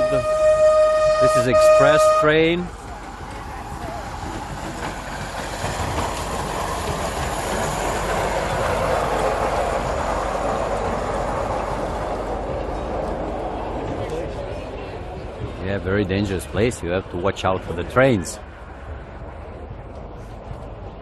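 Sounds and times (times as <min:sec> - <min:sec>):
miniature train wheels on rails: 0:02.6 - 0:11.8.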